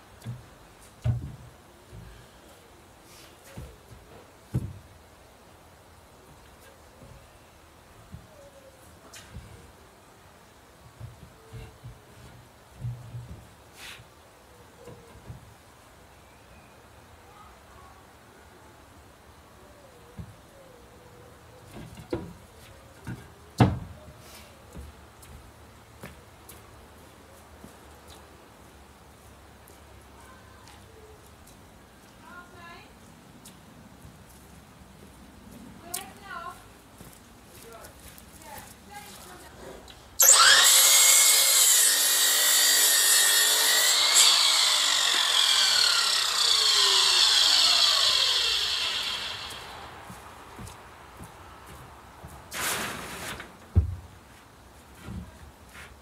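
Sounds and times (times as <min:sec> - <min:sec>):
knocks of timber being handled: 0:00.2 - 0:02.2, 0:03.5 - 0:04.8, 0:23.0 - 0:24.0
power saw cutting timber: 0:40.2 - 0:50.1.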